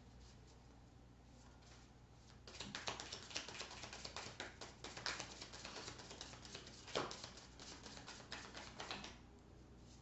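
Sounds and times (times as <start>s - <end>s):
cards being shuffled: 2.5s - 9.2s.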